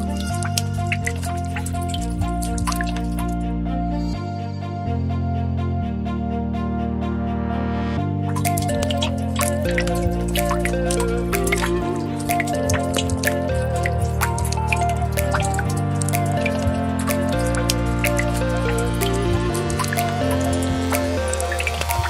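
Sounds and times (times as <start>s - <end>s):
water beads clicking on cement: 0.0s - 3.4s, 8.3s - 22.0s
slow sustained chords music: 0.0s - 22.0s.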